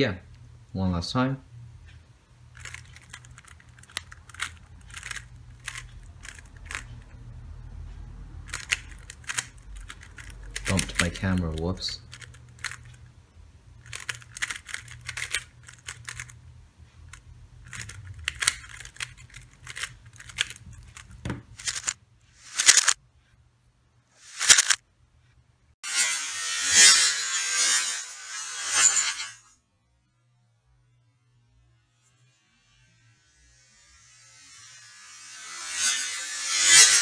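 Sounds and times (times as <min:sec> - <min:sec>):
puzzle cube clicking turns: 0:02.5 - 0:07.1, 0:08.4 - 0:13.1, 0:13.8 - 0:16.4, 0:17.0 - 0:23.0, 0:24.2 - 0:24.8.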